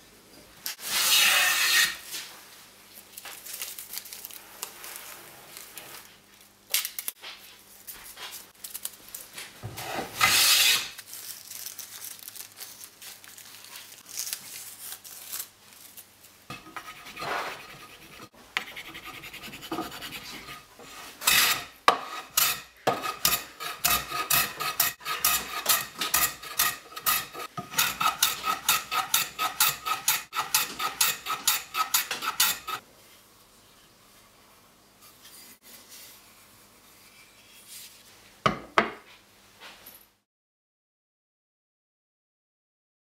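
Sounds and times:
hand file rasping on metal: 0:16.5 - 0:32.8
light irregular scraping: 0:16.5 - 0:32.8.

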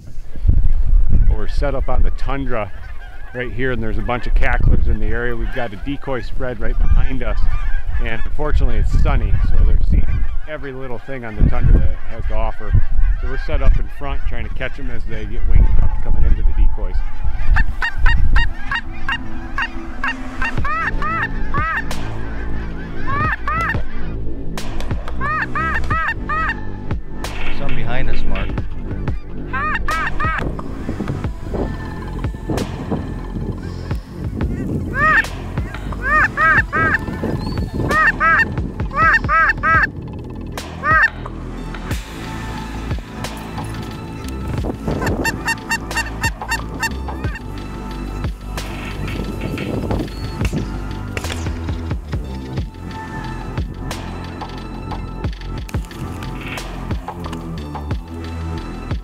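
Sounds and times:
geese honking: 0:01.1 - 0:59.0
soft background music: 0:01.2 - 0:59.0.

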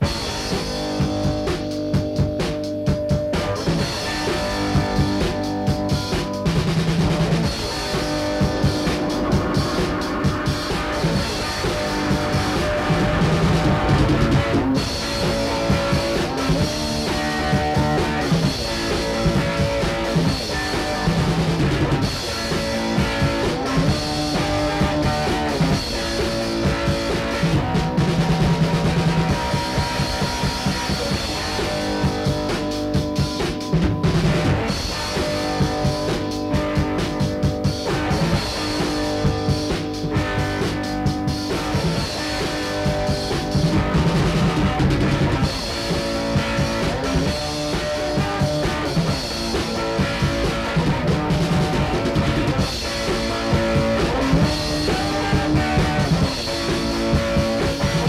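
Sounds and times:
drum kit beat: 0:00.0 - 0:58.0
rock band playing: 0:00.0 - 0:58.0.

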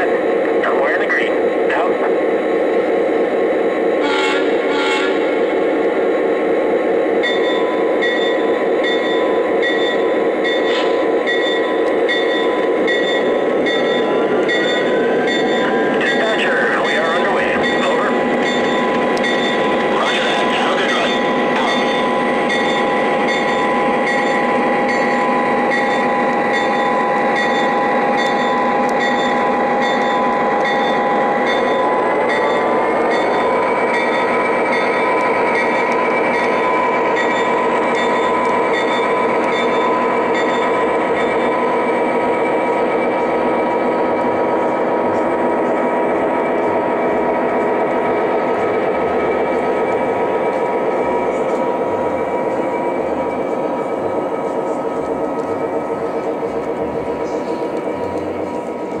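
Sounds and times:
diesel engine drone from speaker: 0:54.0 - 0:59.0.

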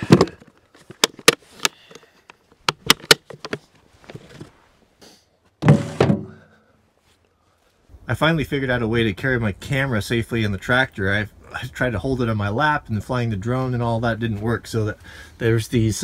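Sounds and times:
case bumping: 0:00.0 - 0:01.8, 0:02.6 - 0:04.5, 0:05.6 - 0:06.4
plastic case latches clicking: 0:02.6 - 0:03.6.

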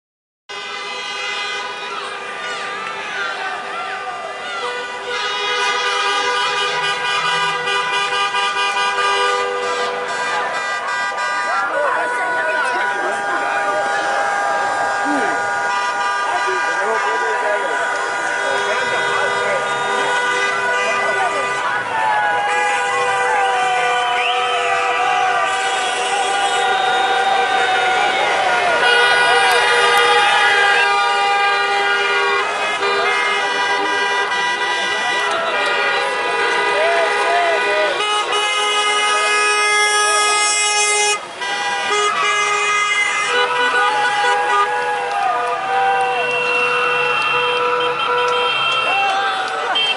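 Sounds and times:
car horns honking: 0:00.5 - 0:49.9
crowd shouting: 0:01.5 - 0:49.9.

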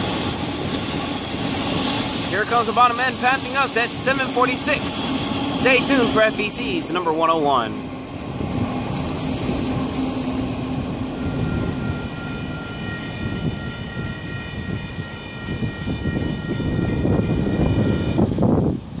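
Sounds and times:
high-pitched squeal: 0:00.0 - 0:07.8, 0:08.5 - 0:18.1
freight train rumbling past: 0:00.0 - 0:19.0.

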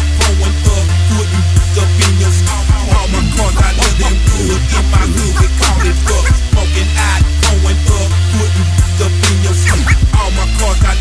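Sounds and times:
rapping over a beat: 0:00.0 - 0:11.0
hip hop beat with heavy bass: 0:00.1 - 0:11.0.

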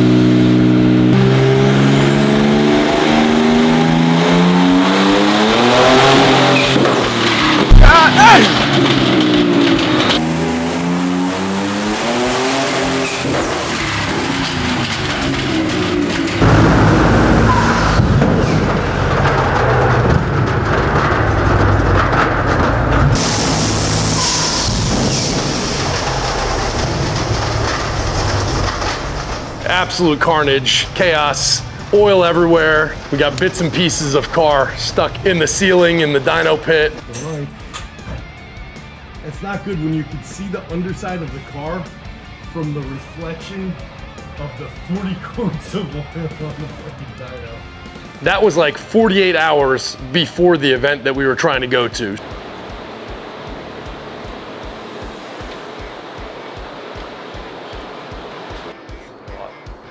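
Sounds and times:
car engine revving at full throttle: 0:00.0 - 0:37.1, 0:51.0 - 0:58.8
rough noisy rumble: 0:03.3 - 0:59.9
sharp bang: 0:06.0 - 0:10.3.

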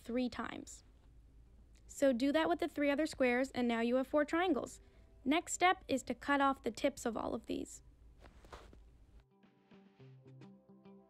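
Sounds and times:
quiet background music with bass: 0:00.0 - 0:11.0.

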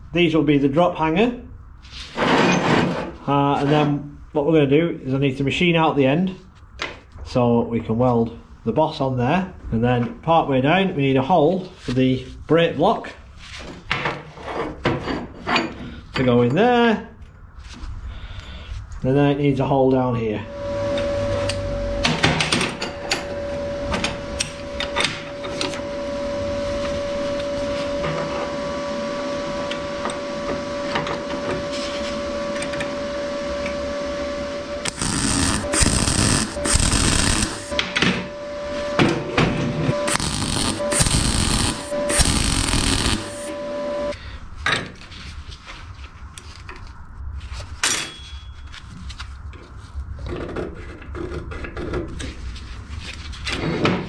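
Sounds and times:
arc welding whine: 0:20.4 - 0:44.2
scribe scratching on steel: 0:34.9 - 0:37.7.

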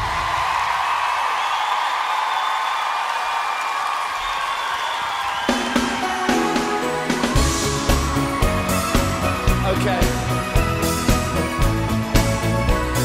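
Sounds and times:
audience cheering: 0:00.0 - 0:13.0
live pop band playing: 0:05.5 - 0:13.0.

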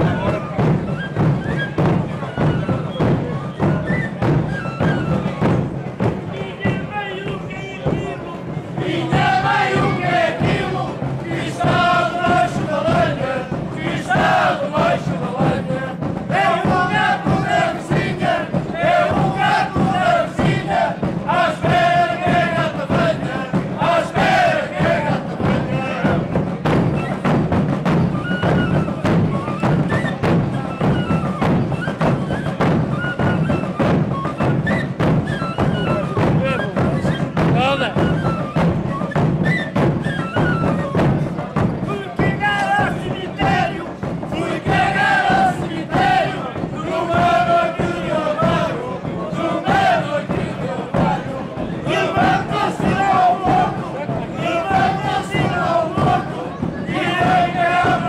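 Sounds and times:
bass drums beating: 0:00.0 - 0:33.1, 0:33.7 - 0:58.0
men chanting: 0:06.3 - 0:26.4, 0:41.8 - 0:58.0.

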